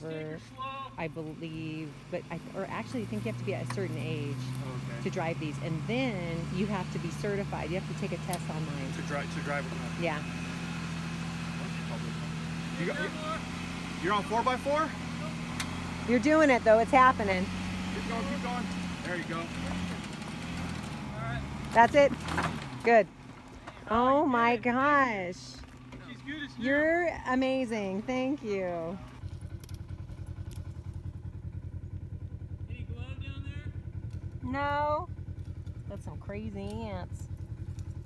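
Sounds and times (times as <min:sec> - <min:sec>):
vehicle engine idling: 0:00.0 - 0:38.0.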